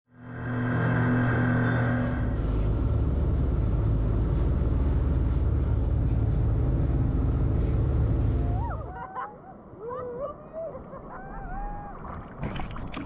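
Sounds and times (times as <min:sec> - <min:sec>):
motorboat engine rumble: 0:00.2 - 0:13.0
water rushing from wake: 0:10.8 - 0:13.0.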